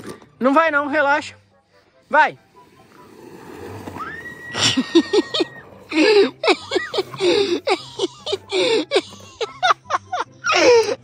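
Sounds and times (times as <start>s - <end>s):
people laughing: 4.5s - 11.0s.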